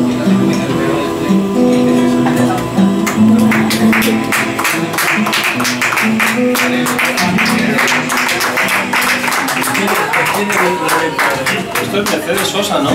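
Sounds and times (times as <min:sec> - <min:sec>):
nylon-string guitar strummed: 0:00.0 - 0:12.9.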